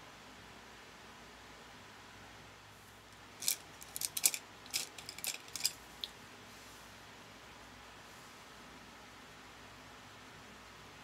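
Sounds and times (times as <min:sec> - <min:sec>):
makeup items clicking on table: 0:03.4 - 0:05.8.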